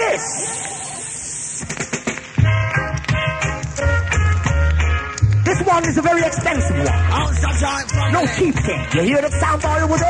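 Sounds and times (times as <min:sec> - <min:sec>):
record hiss and crackle: 0:00.0 - 0:10.0
reggae rhythm with heavy bass: 0:00.0 - 0:10.0.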